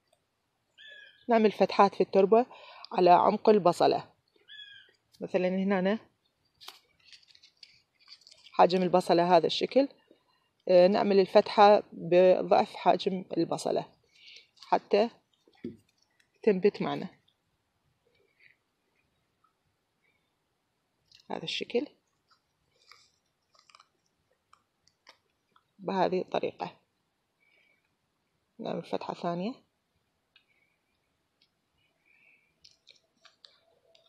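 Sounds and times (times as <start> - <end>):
hand rustling in potting soil: 6.5 - 9.2.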